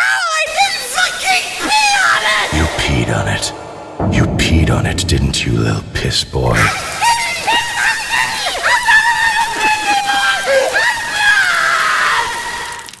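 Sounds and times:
high-pitched voice shrieking: 6.6s - 13.0s.

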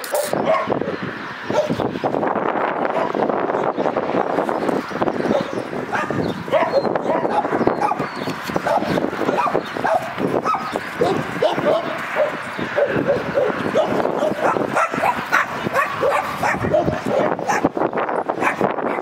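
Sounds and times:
dogs yipping: 0.0s - 1.9s, 2.8s - 3.7s, 5.1s - 19.0s
dogs growling: 5.3s - 17.6s.

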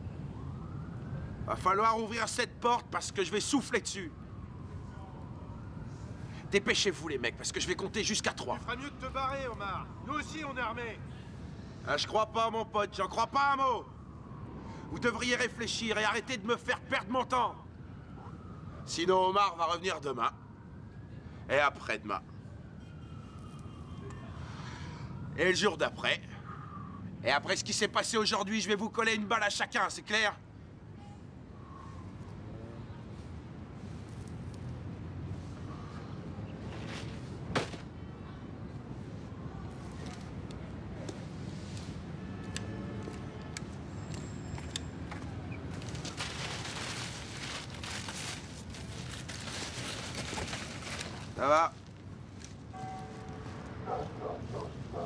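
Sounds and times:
low traffic rumble: 0.0s - 55.0s
outdoor background noise: 0.0s - 55.0s
crackling rustle: 33.1s - 36.0s, 45.6s - 55.0s.

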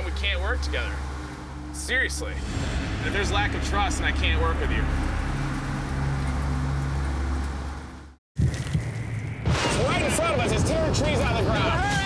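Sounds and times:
car engine and road drone: 0.0s - 11.7s
sudden loud hit: 2.4s - 7.4s, 8.8s - 10.6s.

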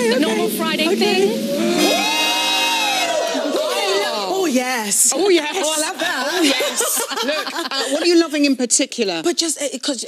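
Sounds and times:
held music chord: 0.0s - 3.9s
women going ooh: 1.2s - 4.4s.

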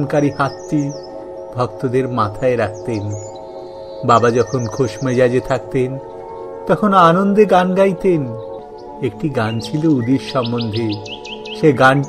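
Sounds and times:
man's voice: 0.0s - 3.4s, 4.0s - 12.0s
background music with drone: 0.0s - 12.0s
bird chirping: 0.0s - 12.0s.

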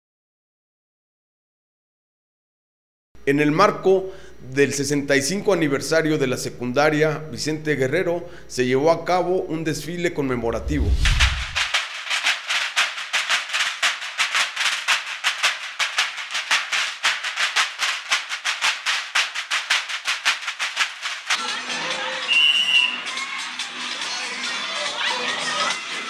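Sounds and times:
snare drums marching beat: 10.8s - 21.4s
music: 11.2s - 26.0s
crowd noise: 21.4s - 26.0s
high whistle: 22.2s - 23.1s.

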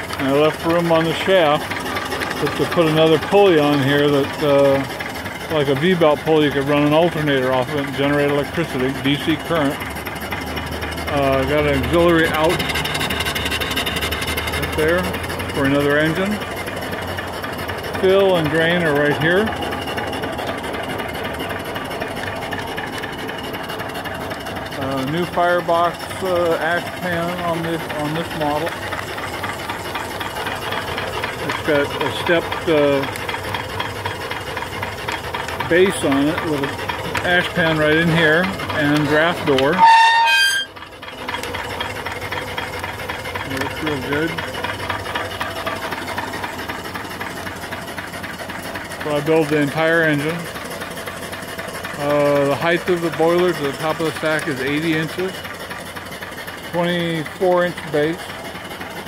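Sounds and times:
steam engine running: 0.0s - 59.0s.

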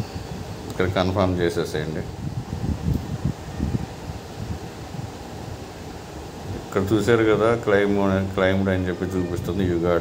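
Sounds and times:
faint hiss: 0.0s - 10.0s
low rumbling microphone noise: 0.0s - 10.0s.

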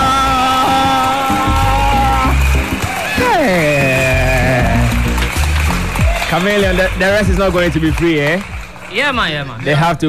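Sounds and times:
reggae backing beat: 0.0s - 8.7s.

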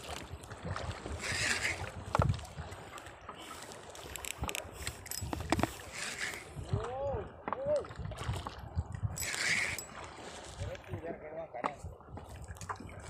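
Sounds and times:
water sloshing against boat hull: 0.0s - 13.0s
wind on microphone: 0.0s - 13.0s.

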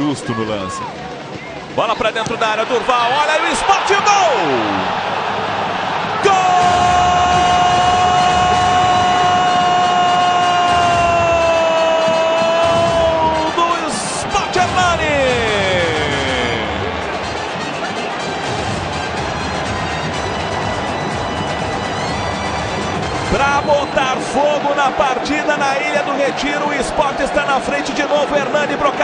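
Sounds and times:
stadium crowd noise: 0.0s - 29.0s
commentator shouting goal: 1.8s - 4.9s, 6.2s - 17.0s.

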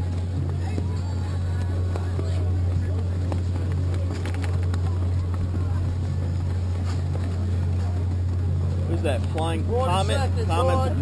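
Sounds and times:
faint voices: 0.0s - 11.0s
low motor hum: 0.0s - 11.0s.

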